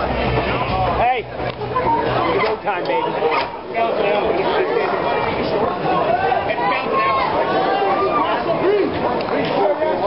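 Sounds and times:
pounding bass music: 0.0s - 2.2s
spectators shouting and whooping: 1.6s - 10.0s.

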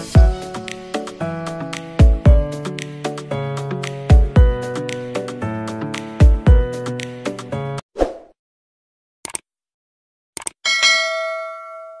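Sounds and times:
notification bell dings: 10.7s - 12.0s.

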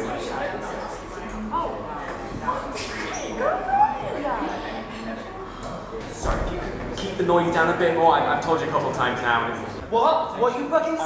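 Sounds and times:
voices chattering: 0.0s - 9.8s.

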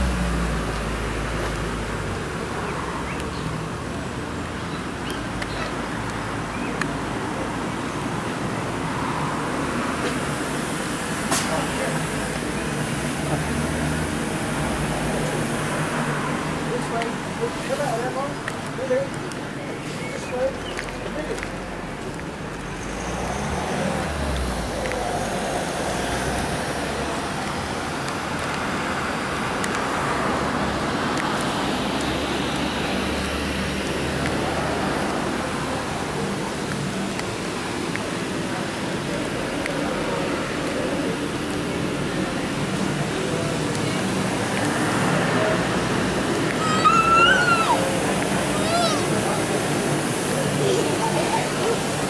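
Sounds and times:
road vehicle rumble: 0.0s - 52.0s
faint voices: 32.1s - 52.0s.

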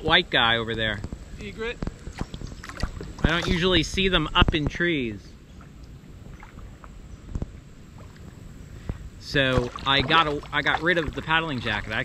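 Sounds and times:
faint water lapping: 1.9s - 3.8s, 5.6s - 7.0s, 7.8s - 12.0s.

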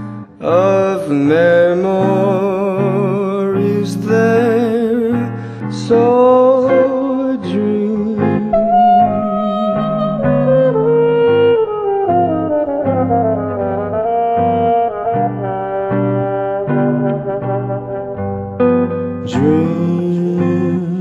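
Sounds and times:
solo horn melody: 8.5s - 20.7s.

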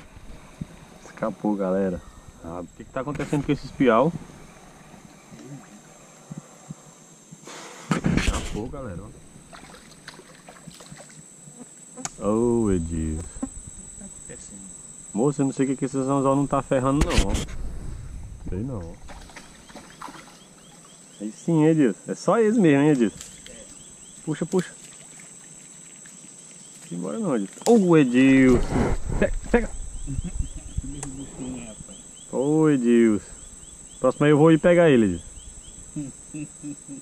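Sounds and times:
faint background hiss: 0.0s - 37.0s
high insect drone: 0.0s - 37.0s
man speaking: 12.2s - 13.3s.

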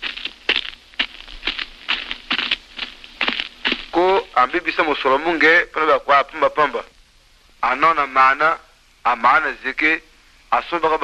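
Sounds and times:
person speaking: 3.7s - 7.0s.

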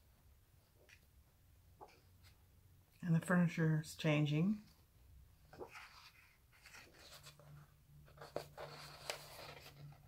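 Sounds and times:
paper pages turning: 5.5s - 10.0s.

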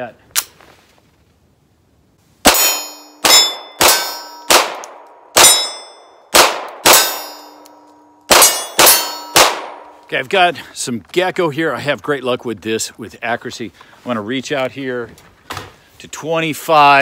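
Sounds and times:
pistol shots: 2.4s - 7.6s, 8.3s - 10.0s
steel targets clanging: 2.5s - 4.5s, 5.4s - 6.1s, 6.9s - 9.6s.

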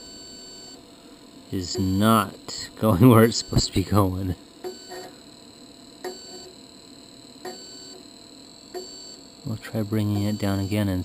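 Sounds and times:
brief tone: 3.3s - 3.9s, 4.6s - 11.0s.

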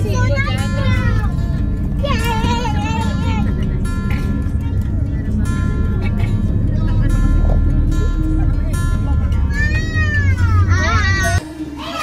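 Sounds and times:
low rumble: 0.0s - 11.4s.

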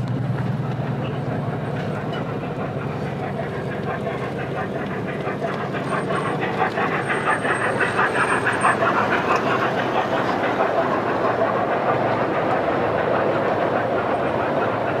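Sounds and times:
model train running on track: 0.0s - 15.0s.

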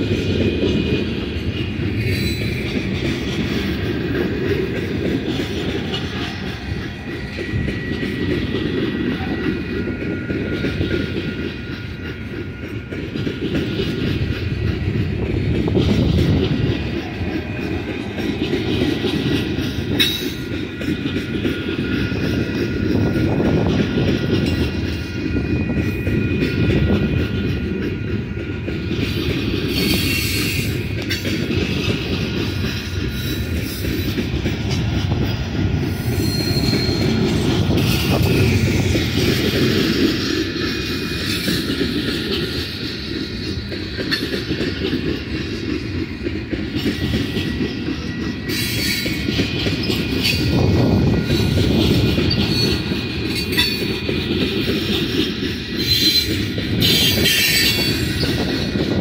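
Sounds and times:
train wheels rumbling on rails: 0.0s - 59.0s
high wheel squeals: 1.8s - 3.9s, 29.7s - 31.2s, 35.8s - 43.4s, 46.9s - 58.8s.

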